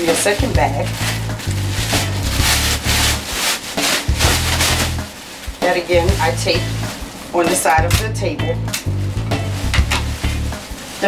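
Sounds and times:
plastic bag rustling and crinkling: 0:00.0 - 0:08.1, 0:08.9 - 0:11.0
background music: 0:00.0 - 0:11.0.

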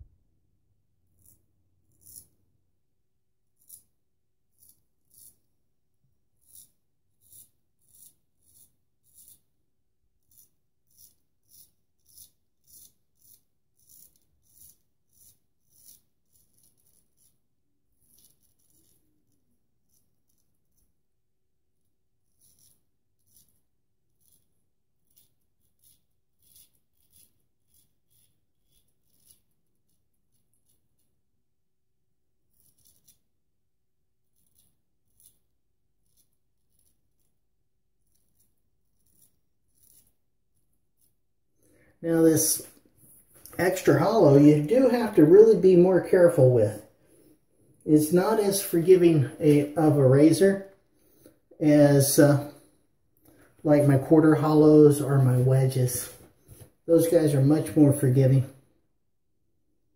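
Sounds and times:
razor scraping stubble: 0:01.1 - 0:02.4, 0:03.4 - 0:05.5, 0:06.3 - 0:21.1, 0:22.2 - 0:31.1, 0:32.5 - 0:33.3, 0:34.2 - 0:37.4, 0:38.0 - 0:41.2, 0:42.2 - 0:52.7.

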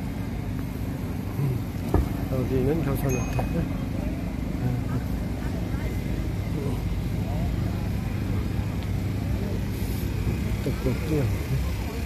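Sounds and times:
low motor rumble: 0:00.0 - 0:12.0
passers-by talking: 0:00.0 - 0:12.0.

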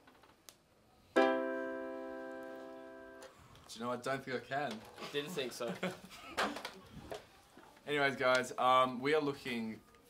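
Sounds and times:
electronic keyboard chord: 0:01.2 - 0:03.3.

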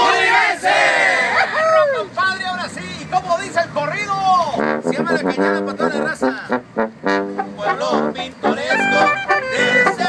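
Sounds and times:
brass band playing: 0:04.5 - 0:10.0.

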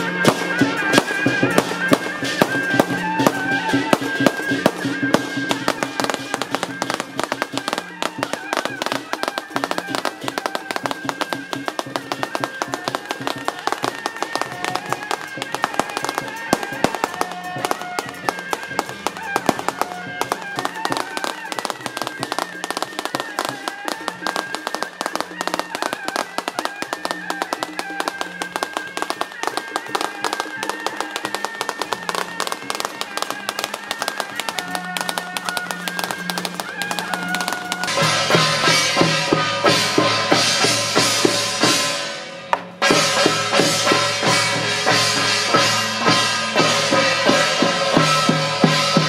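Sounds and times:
processional music: 0:00.0 - 0:49.0
dense continuous crackling: 0:05.1 - 0:38.0.

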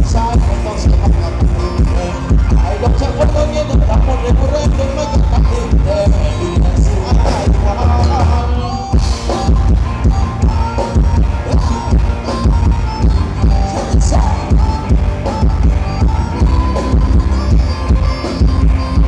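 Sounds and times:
live band dance music: 0:00.0 - 0:19.0.

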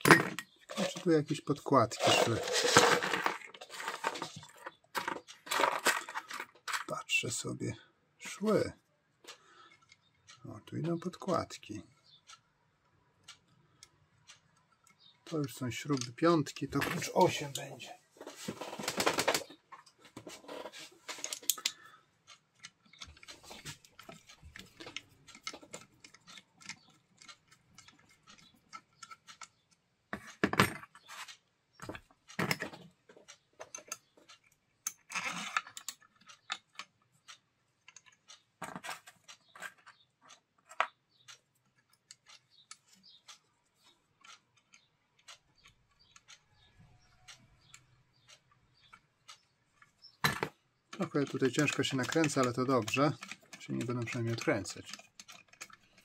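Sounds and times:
small metal parts clinking: 0:01.9 - 0:06.9.

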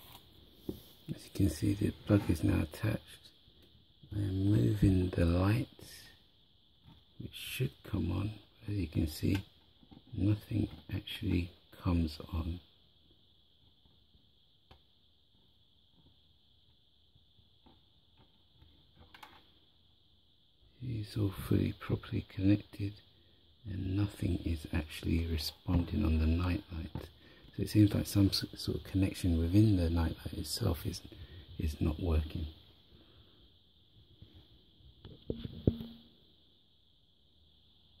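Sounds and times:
steady high hiss: 0:00.0 - 0:38.0.

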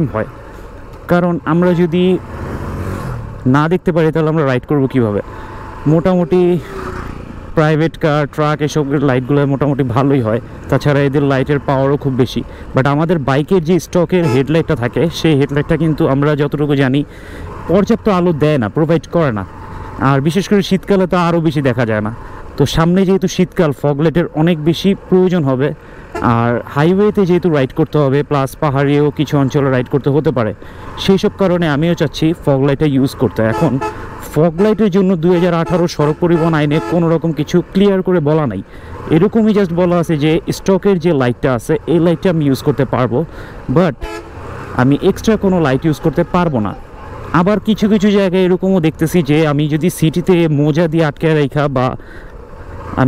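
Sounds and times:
man talking: 0:00.0 - 0:00.4, 0:01.0 - 0:02.2, 0:03.4 - 0:06.8, 0:07.5 - 0:44.0, 0:44.8 - 0:52.1
motorcycle rumbling: 0:00.0 - 0:53.0
road noise: 0:00.0 - 0:53.0
motorcycle engine: 0:00.3 - 0:12.7
vehicle horn toot: 0:14.2 - 0:14.5, 0:33.5 - 0:34.0, 0:34.6 - 0:37.1, 0:44.0 - 0:44.4.

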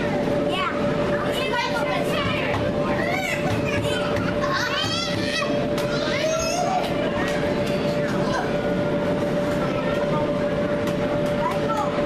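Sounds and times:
steady hum: 0:00.0 - 0:12.0
children shouting: 0:01.3 - 0:07.3.

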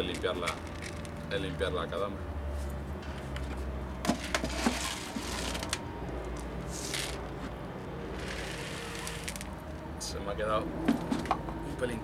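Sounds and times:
clay grains pouring into pot: 0:08.2 - 0:09.5.

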